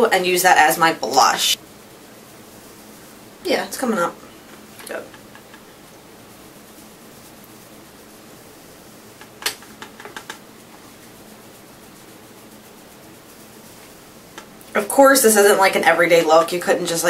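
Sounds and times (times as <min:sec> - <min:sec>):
room hiss: 0:00.0 - 0:17.0
brush tapping in powder palette: 0:09.2 - 0:10.9.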